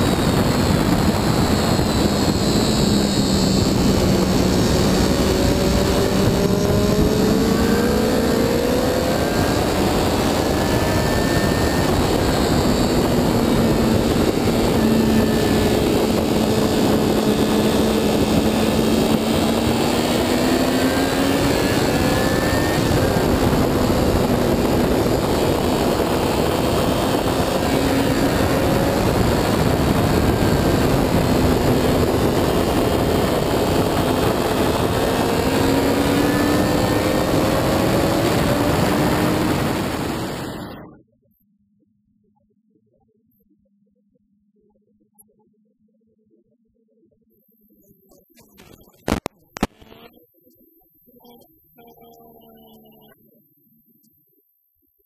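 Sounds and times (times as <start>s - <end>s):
wind rushing: 0.0s - 40.8s
motorcycle engine revving: 0.0s - 40.9s.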